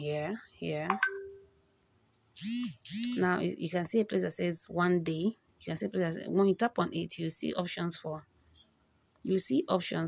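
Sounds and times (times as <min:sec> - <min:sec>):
narrator talking: 0:00.0 - 0:01.1.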